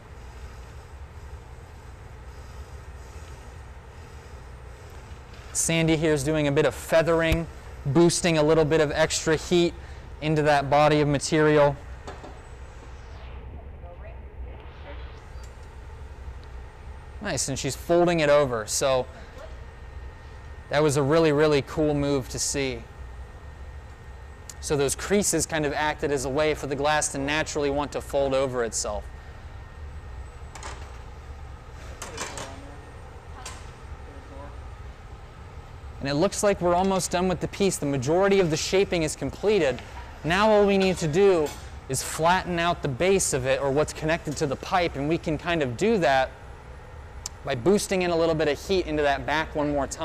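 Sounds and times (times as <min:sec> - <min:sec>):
gas burners and ventilation roaring: 0:00.0 - 0:50.0.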